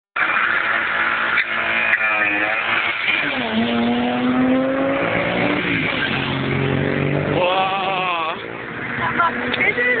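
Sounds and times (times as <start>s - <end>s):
car engine accelerating hard: 0.2s - 10.0s.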